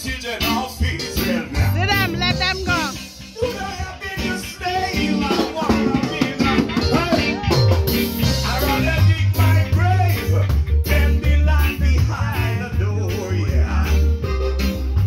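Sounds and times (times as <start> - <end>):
heavy bass line: 0.0 - 15.0
live band with singer: 0.0 - 15.0.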